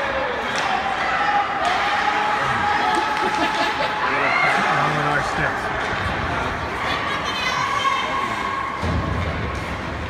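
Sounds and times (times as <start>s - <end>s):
low rumble of play on ice: 0.0s - 10.0s.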